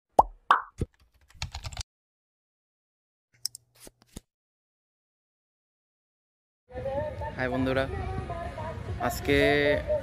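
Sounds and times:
cartoon pops: 0.2 - 0.9
keyboard typing clicks: 1.1 - 1.8.

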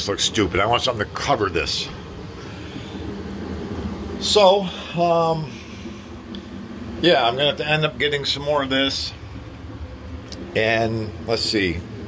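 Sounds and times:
heater blower running: 0.0 - 12.0.

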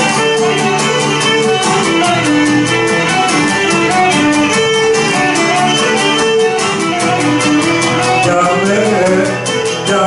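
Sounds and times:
bowed lyra melody: 0.0 - 10.0
lute strumming rhythm: 0.0 - 10.0.

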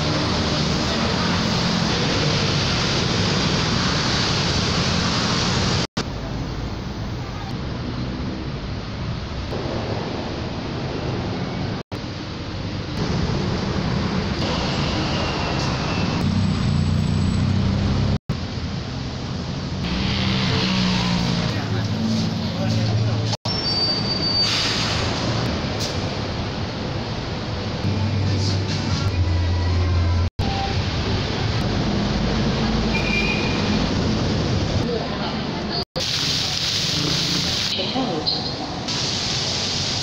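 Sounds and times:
traffic noise: 0.0 - 40.0.

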